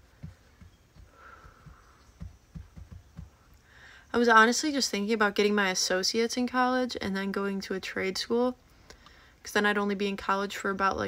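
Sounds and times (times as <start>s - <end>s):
soft low thumps: 0.0s - 3.6s
faint background hum: 0.0s - 11.0s.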